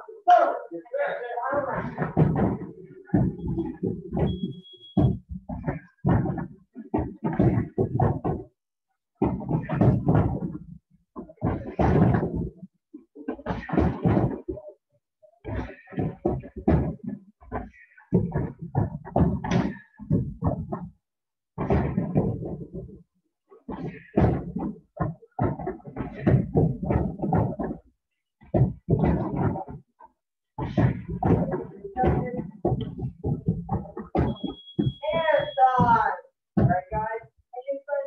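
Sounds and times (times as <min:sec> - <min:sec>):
kicks thudding on punching bags: 0:01.6 - 0:08.5, 0:09.2 - 0:12.6, 0:13.4 - 0:14.6, 0:15.4 - 0:20.9, 0:21.6 - 0:22.9, 0:23.7 - 0:27.8, 0:28.4 - 0:29.8, 0:30.6 - 0:36.0, 0:36.6 - 0:37.0.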